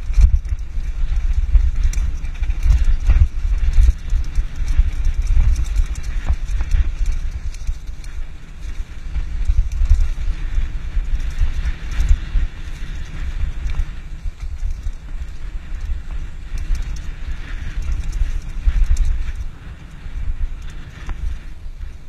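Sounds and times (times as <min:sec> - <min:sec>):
vehicle rattling on dirt track: 0:00.0 - 0:21.9
wind buffeting microphone: 0:00.0 - 0:22.0.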